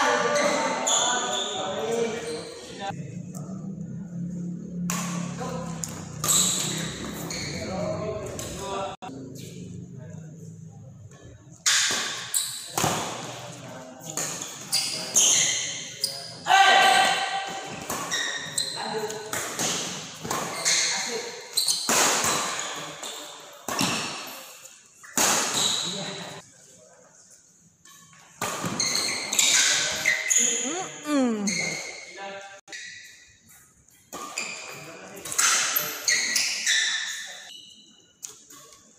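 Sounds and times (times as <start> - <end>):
rackets hitting shuttlecock: 4.8 - 7.0.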